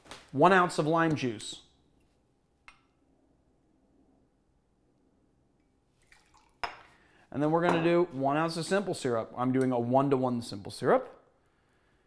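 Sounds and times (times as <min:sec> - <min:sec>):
juice trickling into glass: 0:06.0 - 0:06.8
glass clink: 0:06.6 - 0:06.9.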